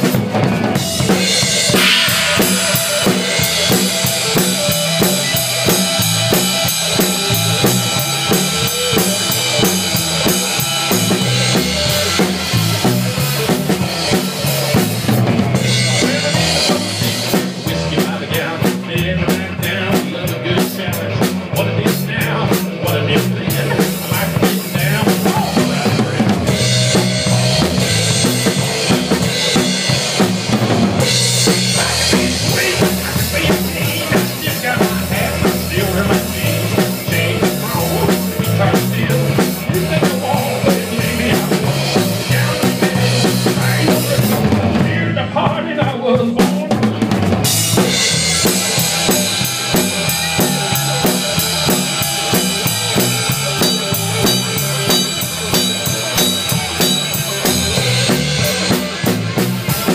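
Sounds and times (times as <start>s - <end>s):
cymbal hits: 1.6s - 4.4s
snare drum: 1.6s - 5.3s.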